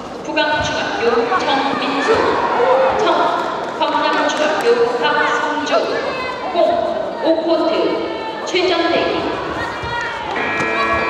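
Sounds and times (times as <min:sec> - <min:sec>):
voices calling out echoing: 0:00.0 - 0:11.0.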